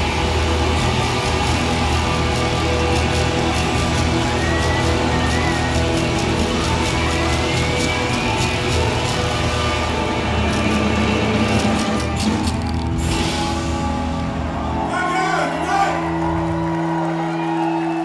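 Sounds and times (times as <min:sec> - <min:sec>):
double bass line: 0:00.0 - 0:14.8
rockabilly band playing: 0:00.0 - 0:14.9.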